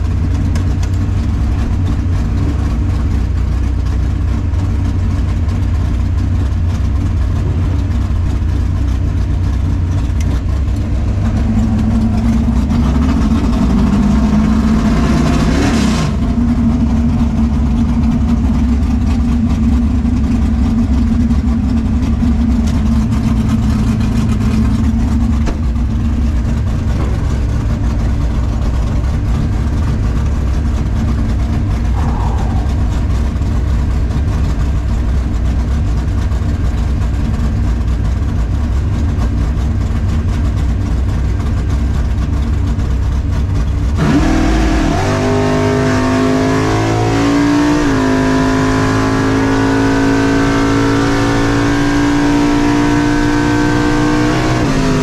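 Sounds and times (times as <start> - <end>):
car engine idling: 0.0 - 15.5, 16.1 - 47.2
louder engine sound: 0.0 - 55.0.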